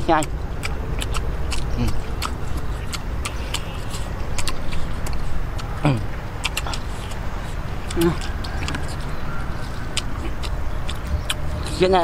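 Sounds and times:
people chewing wet crunching: 0.0 - 12.0
steady low rumble: 0.0 - 12.0.

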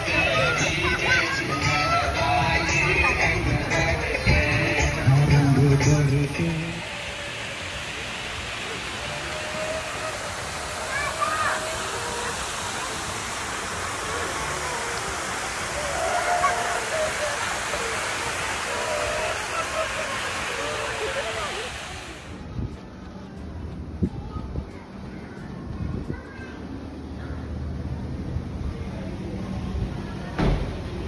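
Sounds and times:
faint distant voices: 0.0 - 31.0
waterfall pouring into pool: 6.5 - 22.4.

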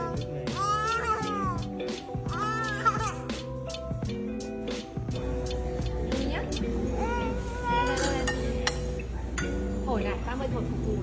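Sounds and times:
toddler crying: 0.0 - 3.7, 6.9 - 8.3
background music with steady beat: 0.0 - 11.0.

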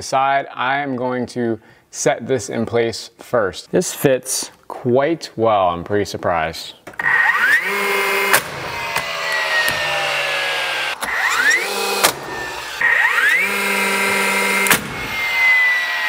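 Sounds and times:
nailer motor whining: 6.9 - 16.0
nail gun firing into wood: 8.1 - 9.9, 11.9 - 12.4, 14.5 - 15.2.

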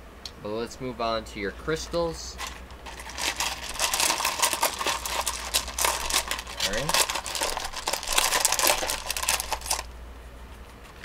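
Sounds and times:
stones clattering in a bowl: 2.4 - 9.8.

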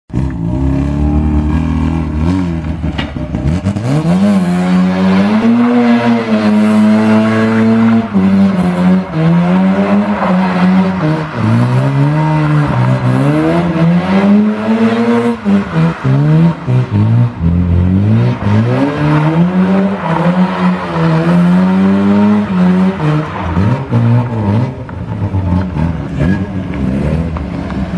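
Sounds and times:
rotary engine revving hard: 0.1 - 27.4.

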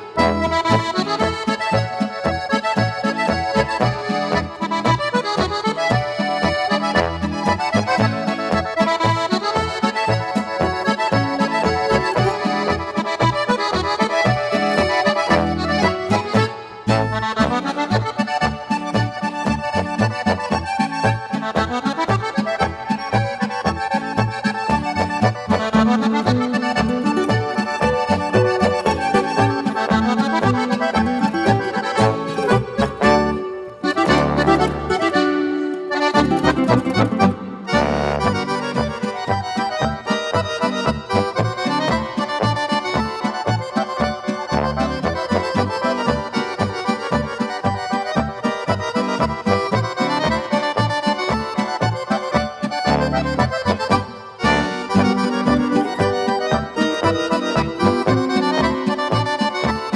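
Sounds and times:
accordion folk music: 0.0 - 59.9
rhythm guitar: 0.0 - 59.9
baritone horn: 6.5 - 8.5, 14.7 - 18.0, 27.3 - 35.4, 36.4 - 39.4, 44.0 - 46.4, 52.8 - 58.6.

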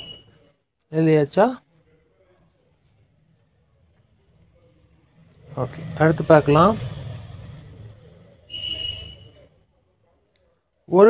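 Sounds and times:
high-pitched whistle with hiss: 0.0 - 0.4, 8.5 - 9.5
faint low hum: 1.6 - 10.9.

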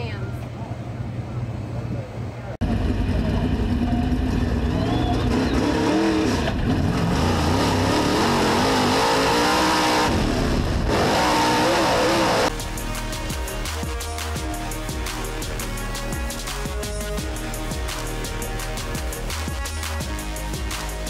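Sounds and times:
race car engine running hard: 2.6 - 21.0.

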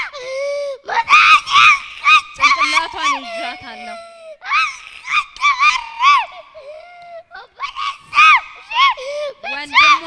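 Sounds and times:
girl screaming into microphone: 0.0 - 10.0.

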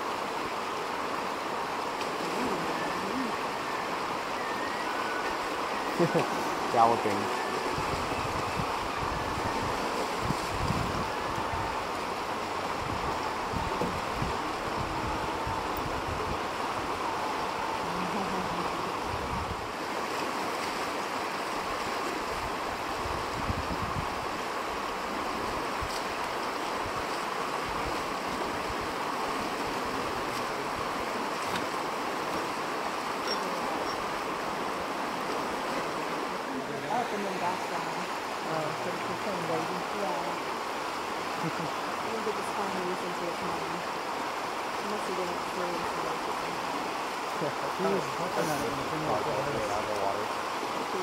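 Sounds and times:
river rushing over rocks: 0.0 - 51.0
wind buffeting microphone: 7.5 - 19.8, 22.3 - 24.4.

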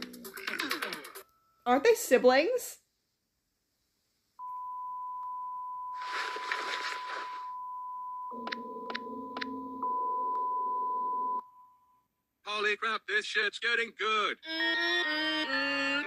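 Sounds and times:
electronic beep tone: 4.4 - 11.8
low steady chord: 8.4 - 10.9.

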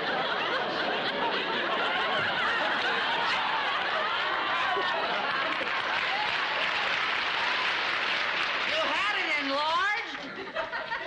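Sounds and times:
audience laughing: 0.0 - 7.9, 9.9 - 11.0
audience applauding: 2.3 - 9.5.

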